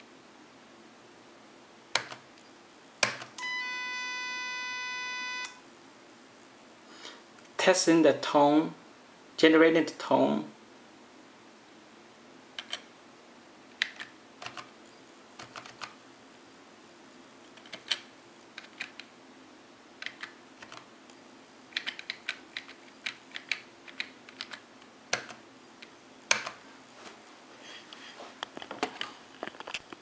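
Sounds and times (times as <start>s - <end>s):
computer keyboard key clicks: 2.0s - 2.2s, 12.6s - 12.8s, 13.8s - 14.7s, 15.4s - 16.0s, 17.6s - 19.1s, 20.0s - 20.9s, 21.8s - 25.4s, 26.3s - 26.6s.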